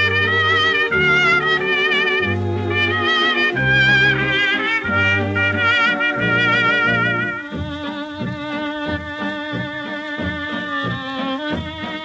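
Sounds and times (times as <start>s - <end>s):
old dance orchestra recording: 0.0s - 12.0s.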